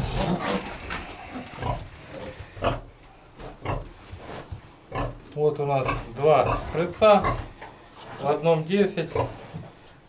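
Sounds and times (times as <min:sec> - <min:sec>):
piglets grunting: 0:00.0 - 0:04.0, 0:04.9 - 0:08.4, 0:09.0 - 0:09.4.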